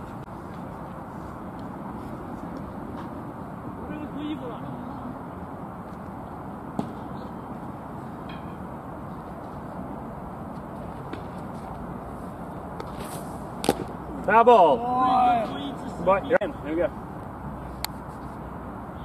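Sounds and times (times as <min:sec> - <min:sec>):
faint distant voices: 0:06.2 - 0:09.3.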